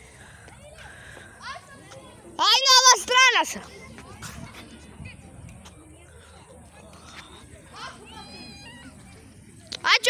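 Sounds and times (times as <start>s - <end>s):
child shouting: 2.4s - 3.5s.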